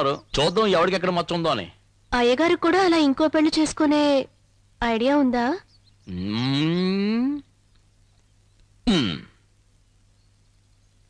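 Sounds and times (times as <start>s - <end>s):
long rising vocal call: 6.1s - 7.4s.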